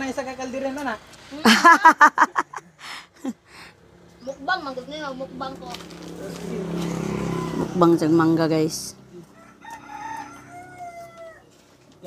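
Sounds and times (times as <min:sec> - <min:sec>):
rooster crowing: 0:09.2 - 0:11.6.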